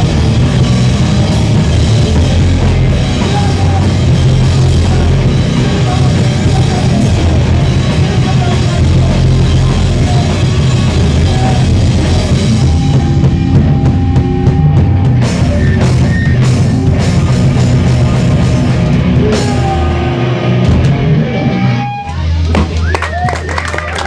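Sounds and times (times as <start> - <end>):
drum kit playing hard: 0.0 - 23.3
electric guitars playing hard: 0.0 - 24.0
high whining tones: 0.7 - 22.3.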